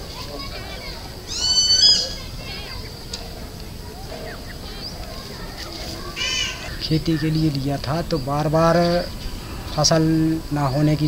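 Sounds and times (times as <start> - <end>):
high-pitched bird call: 1.3 - 3.0, 4.2 - 6.8.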